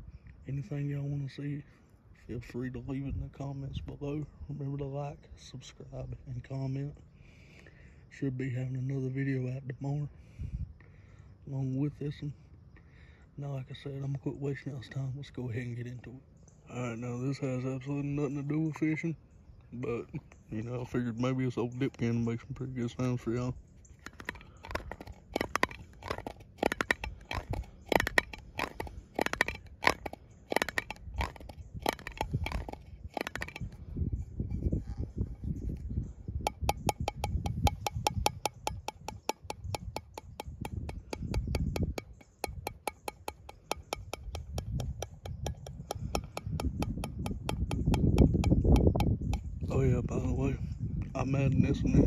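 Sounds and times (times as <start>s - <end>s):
wind rumble on microphone: 2.2s - 6.6s, 10.2s - 10.8s, 21.9s - 42.9s, 43.5s - 52.0s
fingers tapping on a can: 23.9s - 33.8s, 36.4s - 49.7s.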